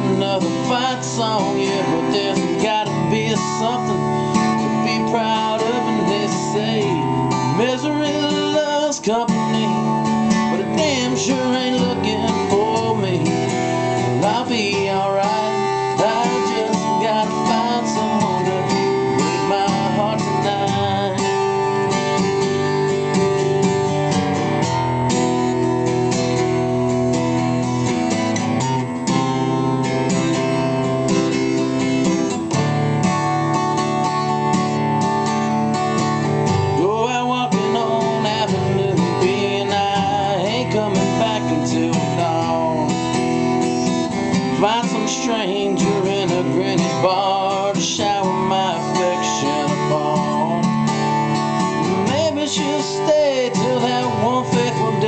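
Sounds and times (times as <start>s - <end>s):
man singing: 0.0s - 23.0s, 36.4s - 55.0s
acoustic guitar strumming: 0.0s - 55.0s.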